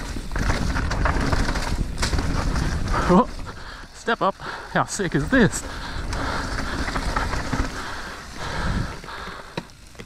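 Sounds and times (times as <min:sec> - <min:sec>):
bike rattles and clicks: 0:00.0 - 0:10.0
bike tyres rolling on dirt and leaves: 0:00.0 - 0:10.0.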